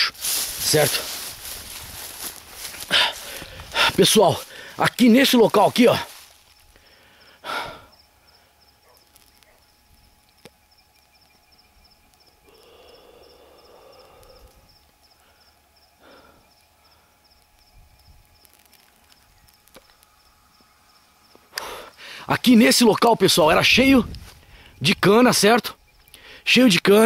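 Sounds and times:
rustle in sugarcane: 0:00.0 - 0:06.8, 0:09.0 - 0:09.6, 0:17.8 - 0:20.2
soft breaths: 0:00.2 - 0:04.8, 0:12.5 - 0:17.3.

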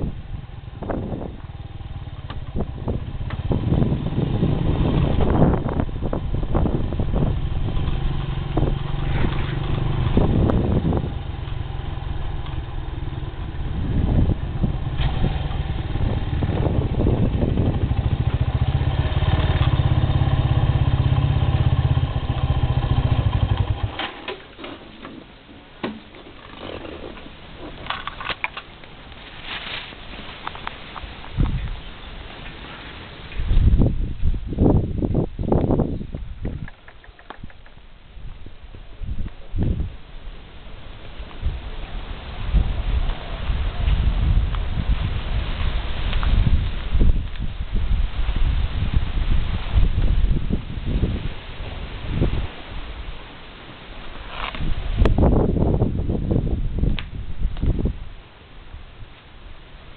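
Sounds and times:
motor scooter engine running: 0:00.4 - 0:24.3.

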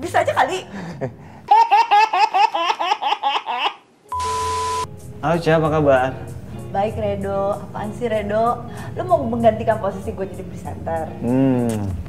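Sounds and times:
high-pitched laughter: 0:01.5 - 0:03.8
short electronic tone: 0:04.1 - 0:04.9.

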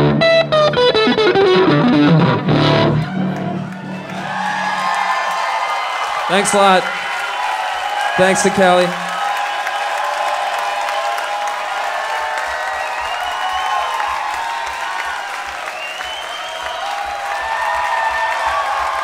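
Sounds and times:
audience cheering and whooping: 0:02.1 - 0:19.0
audience clapping: 0:03.0 - 0:19.0.

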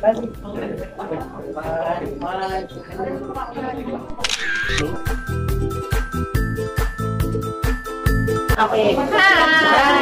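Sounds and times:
camera shutter: 0:04.1 - 0:05.2
women chatting: 0:08.6 - 0:10.0.

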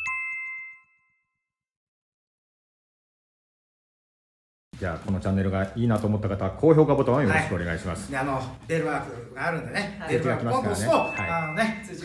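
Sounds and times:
two-note ding chime: 0:00.0 - 0:01.3, 0:10.8 - 0:12.0.

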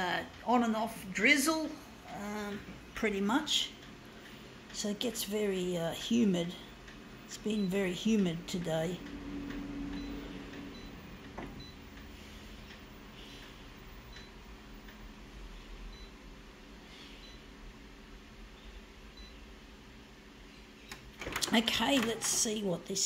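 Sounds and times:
copier humming: 0:00.0 - 0:23.0.

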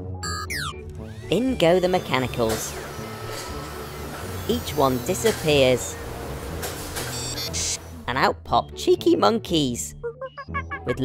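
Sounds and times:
background music: 0:00.0 - 0:11.0
high electronic beeping: 0:07.0 - 0:07.9.

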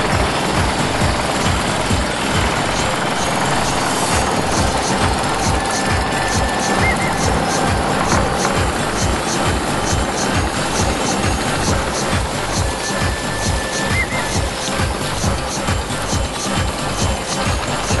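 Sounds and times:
motorboat engine running: 0:00.0 - 0:18.0.

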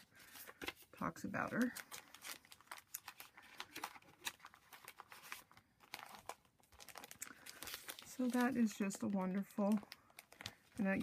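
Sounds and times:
paper envelopes rustling: 0:00.0 - 0:11.0
plastic sleeve crinkling: 0:00.0 - 0:11.0.

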